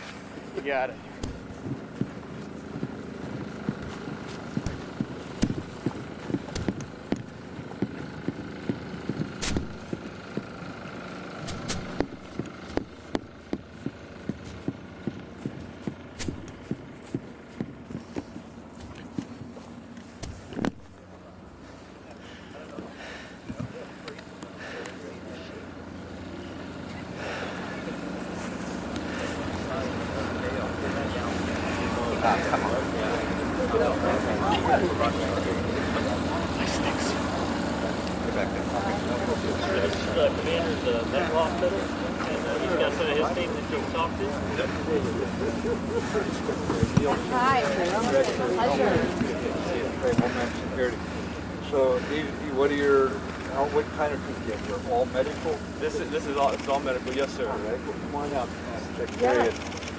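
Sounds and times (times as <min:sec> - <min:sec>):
footsteps on dry dirt: 0:00.0 - 0:23.8
steady background hum: 0:00.0 - 0:59.9
camera handling knocks: 0:20.2 - 0:20.8.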